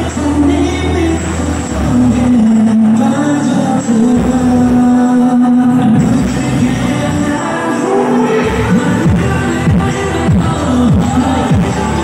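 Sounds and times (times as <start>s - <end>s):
dance pop track over speakers: 0.0s - 12.0s.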